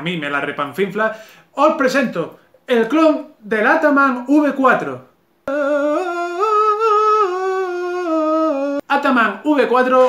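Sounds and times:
man singing held note: 5.5s - 9.0s.

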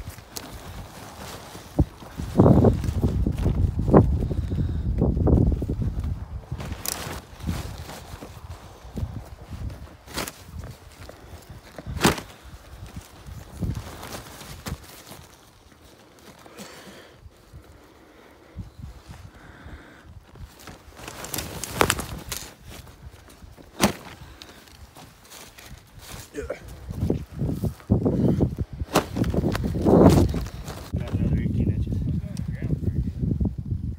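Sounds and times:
footsteps through grass: 20.2s - 31.3s.

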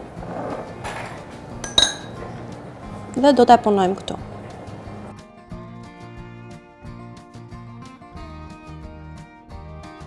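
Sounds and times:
faint background music: 0.0s - 8.5s
metal spoon clinking: 1.6s - 2.2s.

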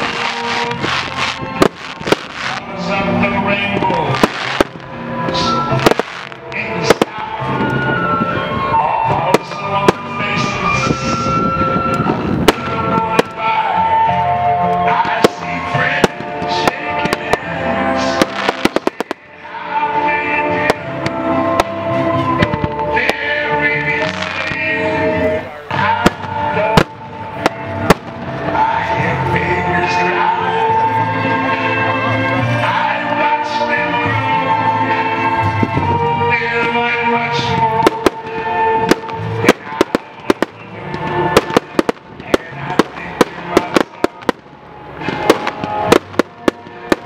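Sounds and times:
fireworks banging and crackling: 0.0s - 14.1s, 14.7s - 30.1s, 34.9s - 47.0s
music playing: 0.0s - 47.0s.

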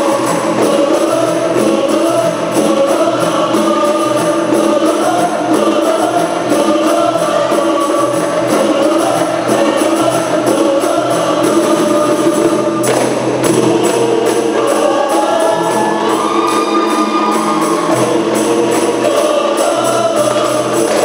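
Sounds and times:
frame drums beating: 0.0s - 21.0s
group singing in unison: 0.0s - 21.0s.

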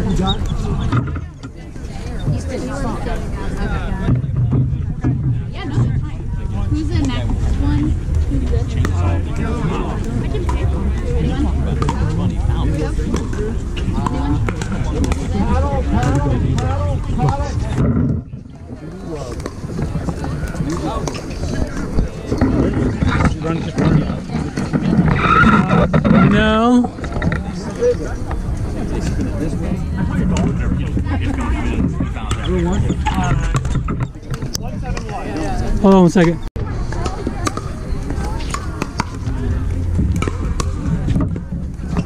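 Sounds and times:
wind rumbling on microphone: 0.0s - 35.8s
people talking: 0.0s - 42.0s
paddles hitting ball: 37.0s - 42.0s.

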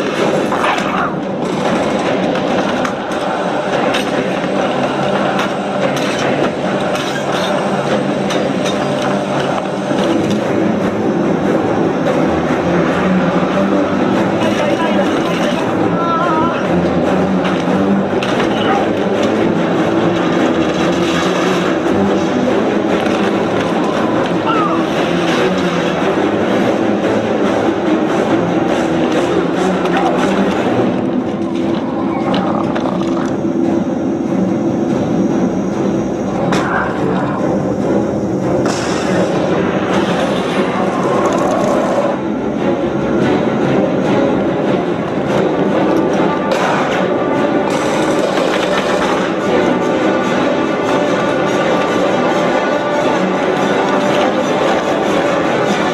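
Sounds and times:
loud film score: 0.0s - 55.9s.

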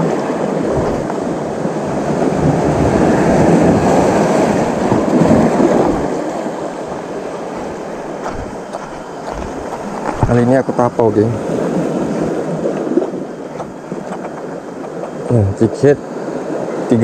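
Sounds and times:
waves washing against rocks: 0.0s - 17.0s.

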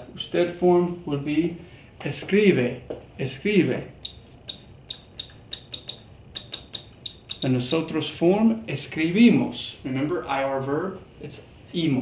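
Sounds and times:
stylus tapping on pen tablet: 4.0s - 7.6s.

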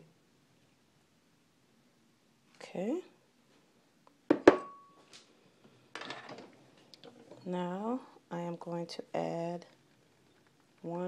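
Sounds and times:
knife knocking ceramic bowl: 4.3s - 4.8s.

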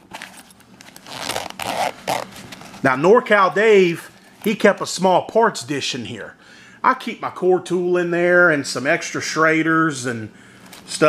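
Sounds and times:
fabric bag flap rustling: 0.0s - 2.9s.

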